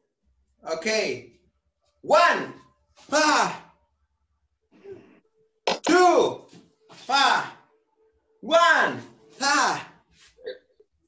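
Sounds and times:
man shouting sharply: 0:02.1 - 0:03.6.

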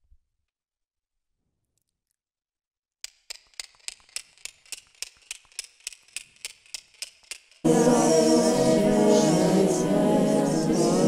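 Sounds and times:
rapid sharp clicks: 0:03.0 - 0:07.6.

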